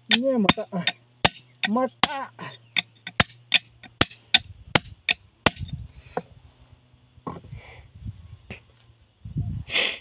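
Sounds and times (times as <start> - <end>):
hammer striking stone: 0.0 - 2.2, 2.8 - 5.7.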